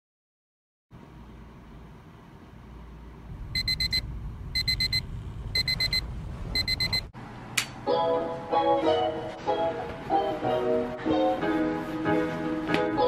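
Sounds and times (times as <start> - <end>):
low steady hum: 1.0 - 7.1
alarm clock high beeps: 3.6 - 4.0, 4.6 - 5.0, 5.6 - 7.1.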